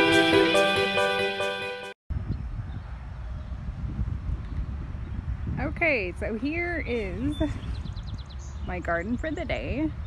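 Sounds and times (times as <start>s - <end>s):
guitar music: 0.0s - 1.9s
wind buffeting microphone: 2.1s - 10.0s.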